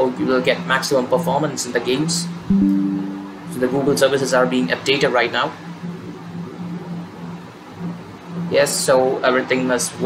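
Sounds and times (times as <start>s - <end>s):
low hum: 2.5s - 4.2s.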